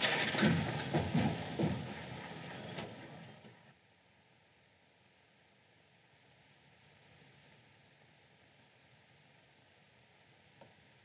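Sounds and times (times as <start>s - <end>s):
car engine pulling away: 0.0s - 3.7s.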